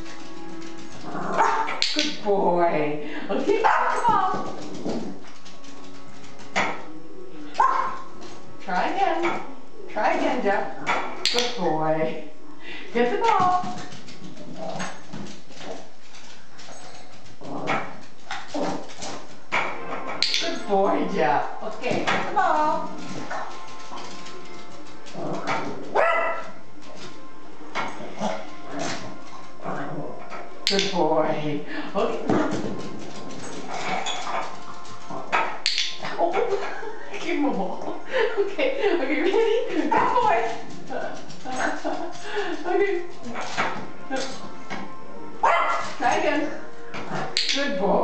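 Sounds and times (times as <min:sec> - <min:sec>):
background music: 0:00.0 - 0:48.0
dog barking: 0:07.6 - 0:08.0, 0:25.9 - 0:26.6, 0:45.4 - 0:45.9.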